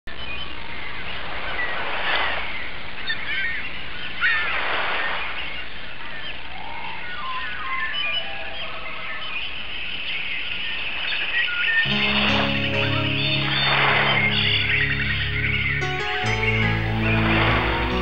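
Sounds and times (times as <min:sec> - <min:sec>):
birds chirping: 0:05.3 - 0:18.0.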